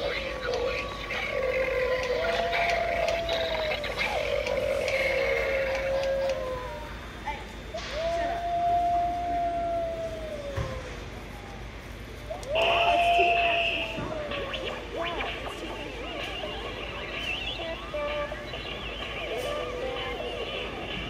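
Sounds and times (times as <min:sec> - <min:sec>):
recorded wolf howls from speaker: 0:00.9 - 0:04.2, 0:04.8 - 0:06.9, 0:07.9 - 0:11.0.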